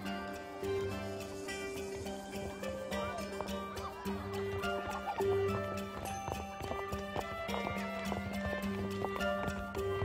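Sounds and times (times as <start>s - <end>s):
film score with sustained notes: 0.0s - 10.0s.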